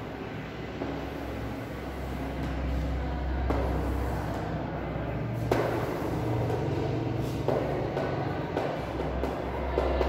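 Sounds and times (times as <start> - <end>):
chalk drawing on blackboard: 0.8 - 4.7, 5.4 - 10.0
sharp chalk tap: 5.4 - 10.0.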